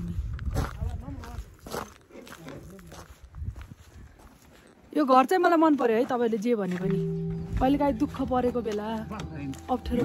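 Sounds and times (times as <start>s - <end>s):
wind rumbling on microphone: 0.0s - 1.7s, 2.9s - 4.3s
footsteps crunching through snow: 0.0s - 10.0s.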